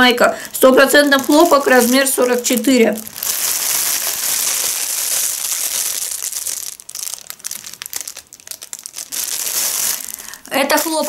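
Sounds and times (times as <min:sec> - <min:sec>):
plastic packaging crinkling: 0:00.5 - 0:11.0.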